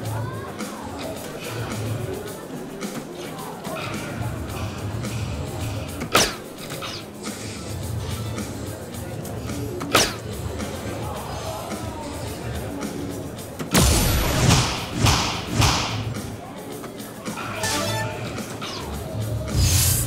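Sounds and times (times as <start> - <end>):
background music: 13.3 - 20.0.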